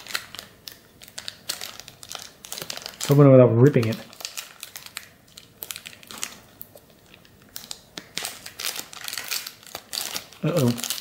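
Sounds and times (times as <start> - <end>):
plastic wrapper crinkling: 0.0 - 11.0.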